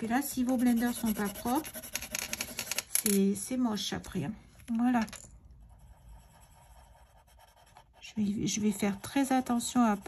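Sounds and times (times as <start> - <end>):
pencil scratching on paper: 0.0 - 2.8, 5.6 - 10.0.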